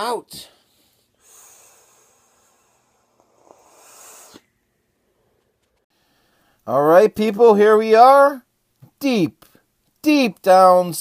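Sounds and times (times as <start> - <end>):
airy hiss of air drawn in: 1.2 - 4.5.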